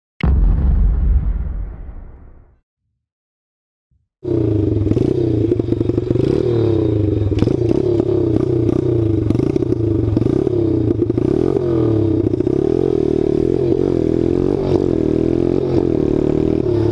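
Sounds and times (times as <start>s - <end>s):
motorbike engine revving: 4.2s - 16.9s.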